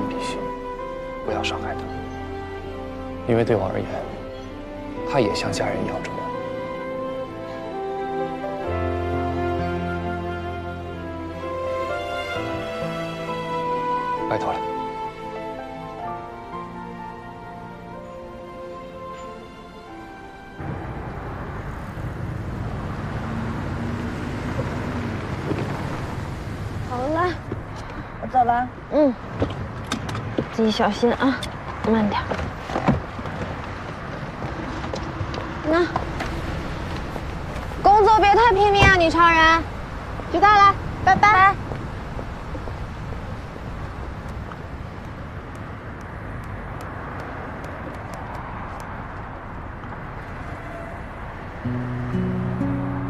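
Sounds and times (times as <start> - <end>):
low rumble of road traffic: 0.0 - 53.0.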